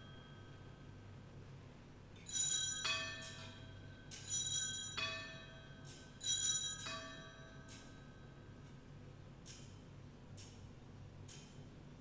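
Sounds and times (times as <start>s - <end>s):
altar bells ringing: 0.0s - 0.8s, 2.3s - 8.4s.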